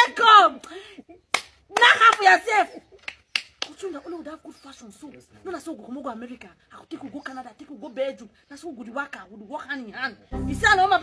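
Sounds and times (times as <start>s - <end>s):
sharp hand slaps: 0.6s - 2.2s.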